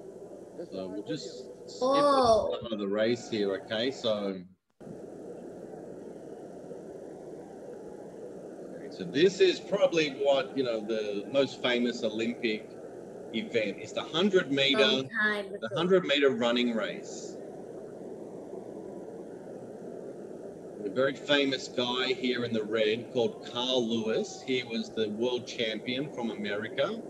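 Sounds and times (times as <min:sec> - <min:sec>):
low-pitched background noise: 0:00.0 - 0:27.0
muffled stadium rumble: 0:00.0 - 0:27.0.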